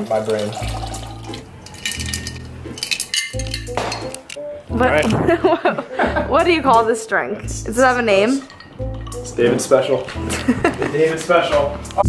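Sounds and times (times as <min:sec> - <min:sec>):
drink pouring over ice: 0:00.0 - 0:03.6
glass clinks: 0:00.6 - 0:04.3, 0:08.2 - 0:09.6.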